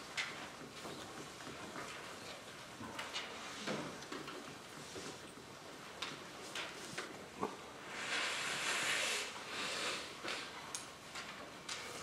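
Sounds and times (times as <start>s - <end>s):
soft rustling hiss: 0.0s - 12.0s.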